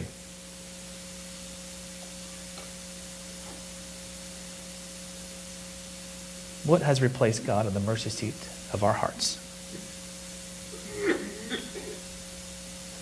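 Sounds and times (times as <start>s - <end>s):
faint electrical hum: 0.0s - 13.0s
low hiss: 0.0s - 13.0s.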